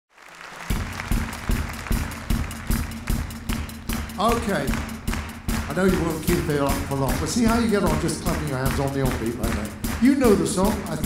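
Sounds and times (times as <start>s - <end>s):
drum kit playing a steady beat: 0.7s - 11.0s.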